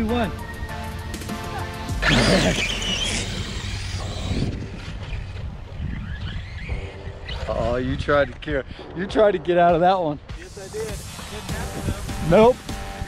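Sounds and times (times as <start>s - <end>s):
electric motor whine: 0.6s - 7.5s
tyres spinning on loose dirt: 2.0s - 6.7s.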